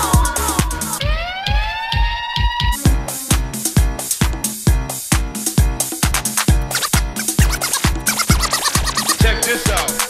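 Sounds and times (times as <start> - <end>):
hi-hats: 6.1 - 9.3
house music: 6.1 - 10.0.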